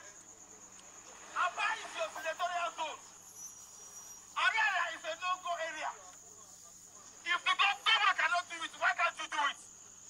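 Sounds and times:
man speaking through megaphone: 1.4 - 3.0, 4.4 - 9.7.

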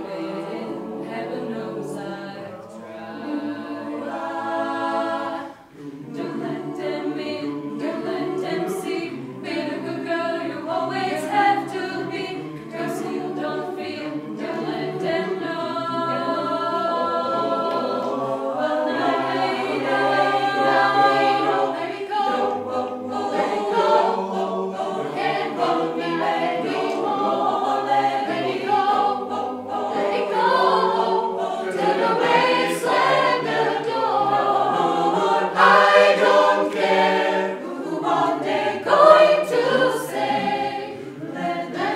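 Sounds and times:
choir singing a cappella: 0.0 - 41.9.

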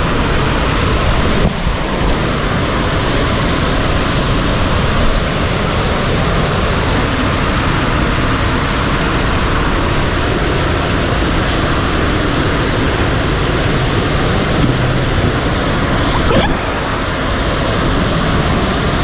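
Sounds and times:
water rushing along a slide channel: 0.0 - 19.0.

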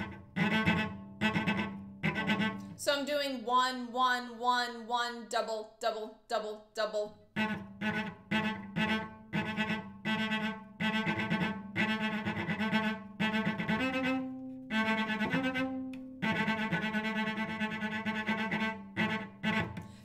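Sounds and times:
cello bouncing bow strokes: 0.0 - 5.1, 7.2 - 20.0.

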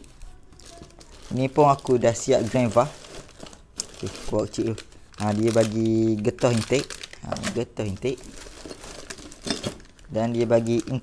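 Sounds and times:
plastic wrapping crinkling: 0.0 - 11.0.

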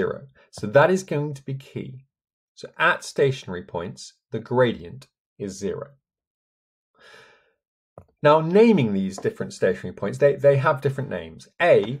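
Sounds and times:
man breathing in: 7.0 - 7.6.

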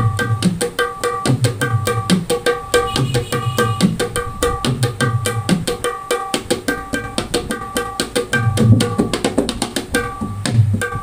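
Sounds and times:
hand drum rhythm: 0.0 - 11.0.

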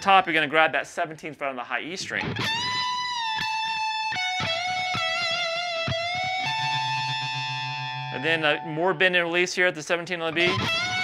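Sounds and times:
electric guitar lead phrase: 2.2 - 9.4, 10.3 - 11.0.

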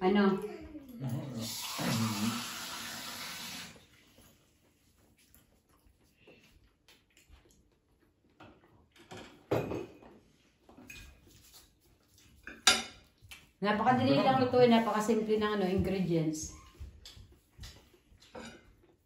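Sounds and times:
cutlery clicking on plates: 17.0 - 18.8.

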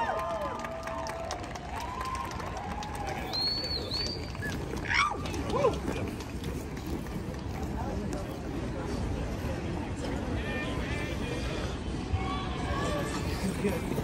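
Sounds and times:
crowd voices: 0.0 - 14.0.

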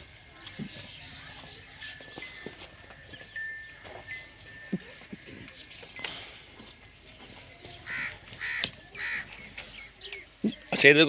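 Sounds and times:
bird giving harsh calls: 7.8 - 9.6.

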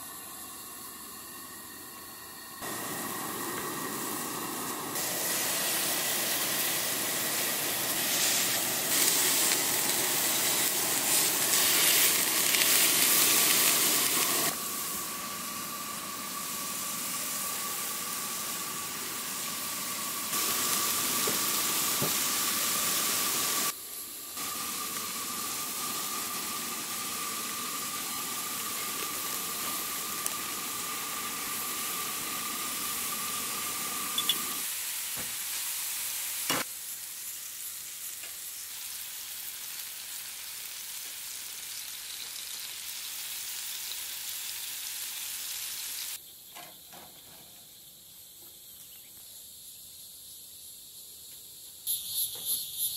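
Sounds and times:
burger patties sizzling on griddle: 0.0 - 46.2
thin high tone: 34.0 - 34.6.

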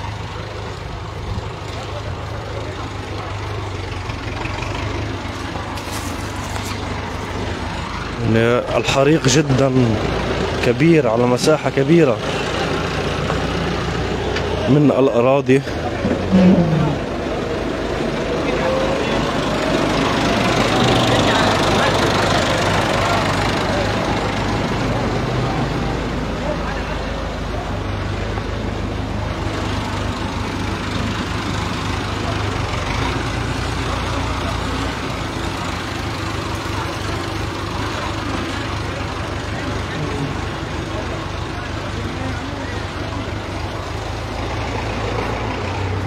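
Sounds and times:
tractor engine passing: 0.0 - 46.0.

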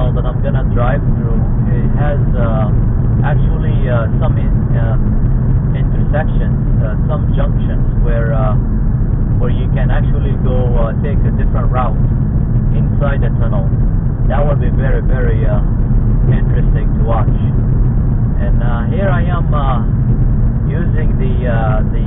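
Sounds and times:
person talking: 0.0 - 5.1, 5.8 - 8.6, 9.4 - 12.1, 12.8 - 13.7, 14.3 - 15.7, 16.3 - 17.5, 18.4 - 19.9, 20.7 - 22.0
car engine and tyres rumble: 0.0 - 22.0.

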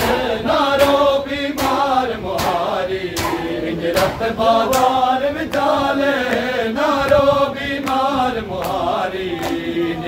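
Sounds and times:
men chanting in unison: 0.0 - 10.0
hands slapping chests: 1.6 - 1.8, 2.4 - 5.7.

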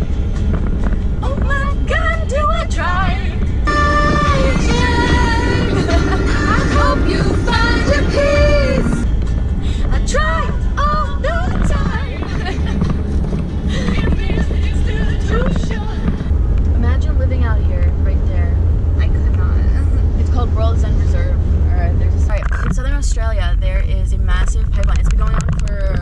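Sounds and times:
music: 0.0 - 16.3
car road and engine rumble: 0.0 - 26.0
voices: 1.3 - 9.0, 13.7 - 26.0.

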